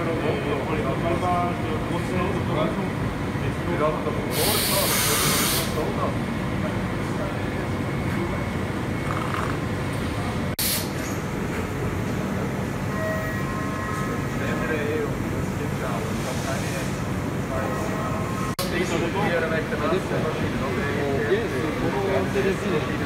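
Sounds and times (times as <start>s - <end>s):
machine mechanical hum: 0.0s - 23.0s
spray hissing: 4.3s - 5.7s.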